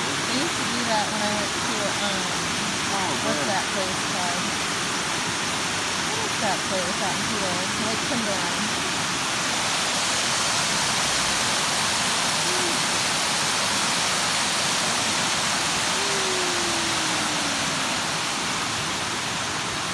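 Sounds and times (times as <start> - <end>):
waterfall rushing: 0.0 - 19.9.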